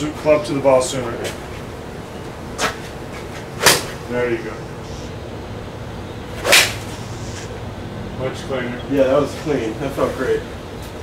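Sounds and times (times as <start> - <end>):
golf ball strike crack: 3.6 - 4.0, 6.4 - 7.0
golf club swishing: 6.4 - 7.5.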